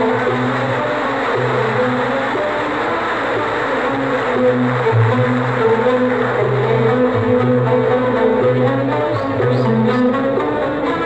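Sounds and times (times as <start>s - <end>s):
audience applauding: 0.0s - 11.0s
orchestra playing low notes: 0.0s - 11.0s.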